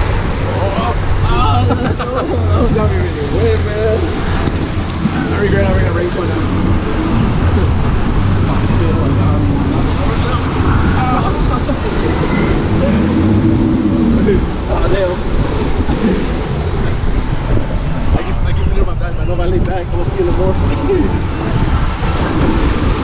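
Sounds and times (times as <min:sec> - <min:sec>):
indistinct voices: 0:00.0 - 0:23.0
rushing churning water: 0:00.0 - 0:23.0
wind noise on microphone: 0:00.0 - 0:23.0.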